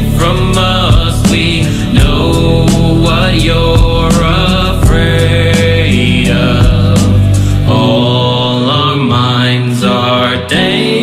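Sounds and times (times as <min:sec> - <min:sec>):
rap song: 0:00.0 - 0:11.0.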